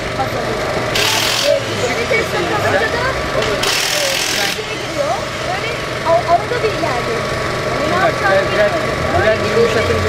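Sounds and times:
voices talking: 0:00.0 - 0:10.0
pneumatic tool hissing burst: 0:00.9 - 0:01.8, 0:03.6 - 0:04.8.

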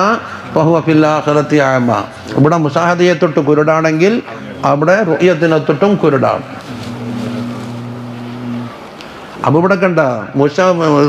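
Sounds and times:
steady low hum: 0:06.4 - 0:09.4.

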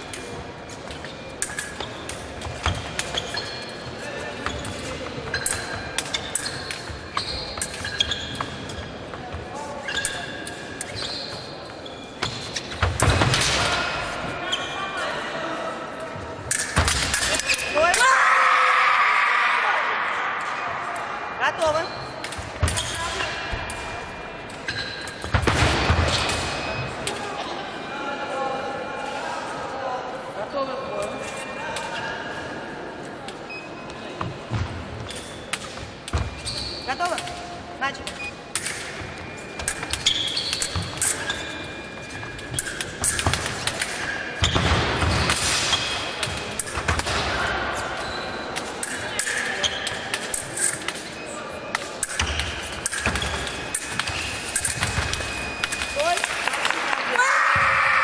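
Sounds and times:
fencing blades clicking: 0:00.0 - 0:03.6, 0:16.5 - 0:18.1, 0:42.3 - 0:44.2, 0:48.5 - 0:56.7.

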